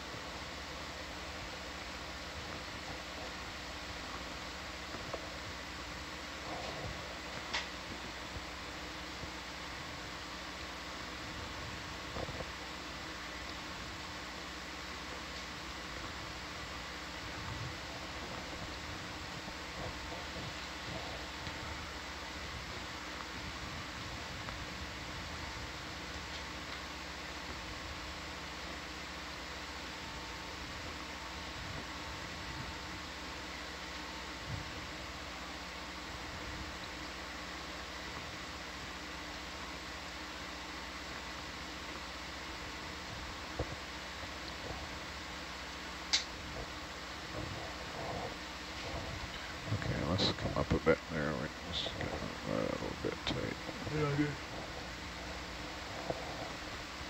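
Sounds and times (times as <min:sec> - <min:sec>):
equipment and ventilation hum: 0:00.0 - 0:57.0
faint steady tones: 0:00.0 - 0:57.0.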